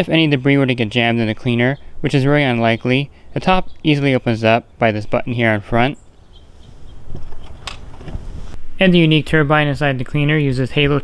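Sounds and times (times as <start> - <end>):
plastic latch clicking: 7.3 - 8.2.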